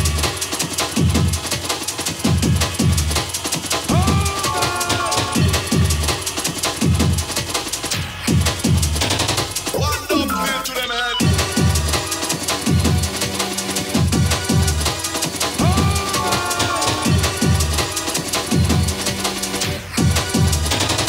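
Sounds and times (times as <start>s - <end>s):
eight-bit jungle music: 0.0s - 21.0s.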